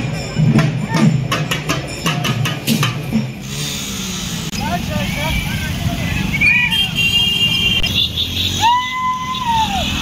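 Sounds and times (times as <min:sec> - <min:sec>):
drums beaten in quick strikes: 0:00.1 - 0:03.5
motorcycles: 0:01.4 - 0:10.0
crowd shouting: 0:08.6 - 0:10.0.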